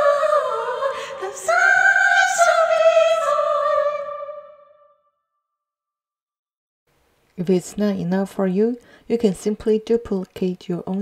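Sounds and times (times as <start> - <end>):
choir of female voices: 0.0 - 4.8.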